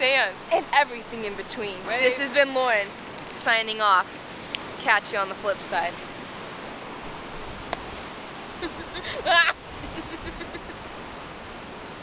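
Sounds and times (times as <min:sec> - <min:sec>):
surf washing over rocks: 0:00.0 - 0:12.0
person crying out or laughing: 0:08.6 - 0:10.7.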